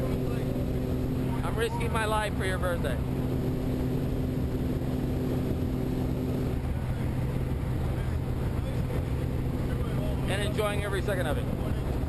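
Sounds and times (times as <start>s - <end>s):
light aircraft engine droning: 0.0s - 12.0s.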